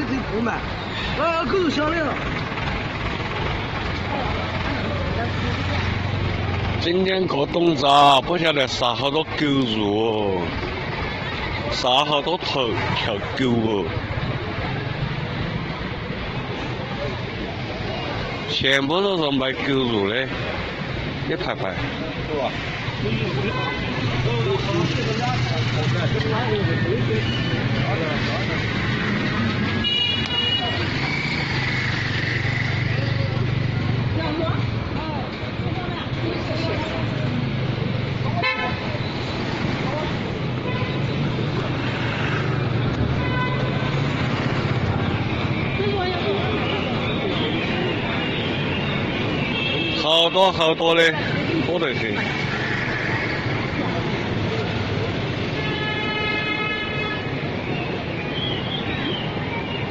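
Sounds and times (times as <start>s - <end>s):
street traffic noise: 0.0s - 59.9s
voices chattering: 0.0s - 59.9s.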